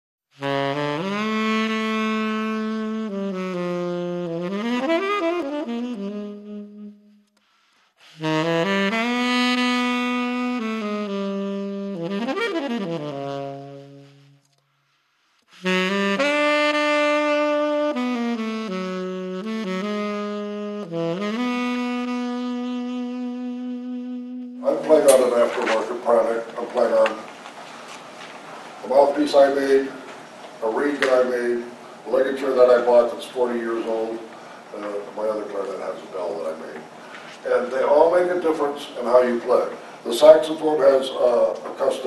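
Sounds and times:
solo saxophone: 0.3 - 27.0.

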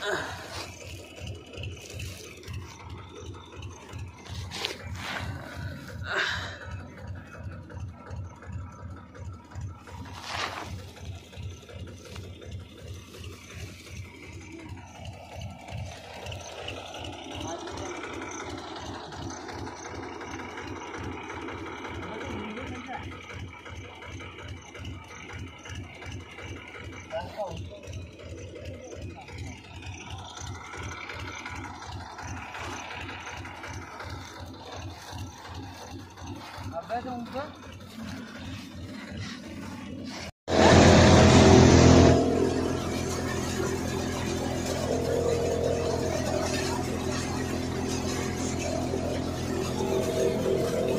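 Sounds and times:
threshing machine running: 0.0 - 50.9.

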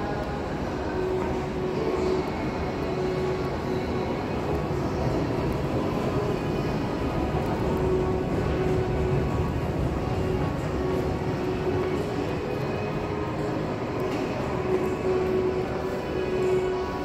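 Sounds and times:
metro station rumbling hum: 0.0 - 17.0.

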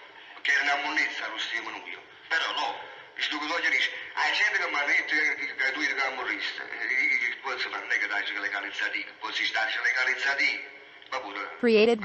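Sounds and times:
people talking: 0.4 - 10.6, 11.2 - 12.0.

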